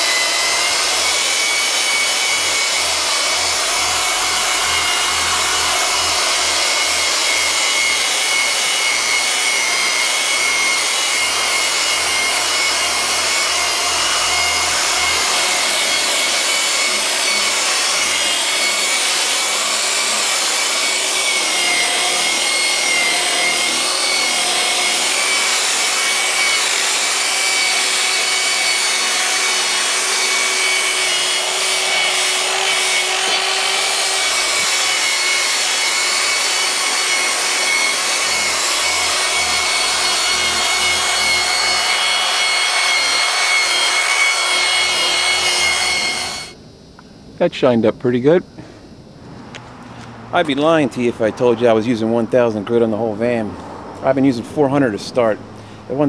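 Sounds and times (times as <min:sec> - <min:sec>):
electric rotary buffer whining: 0:00.0 - 0:46.6.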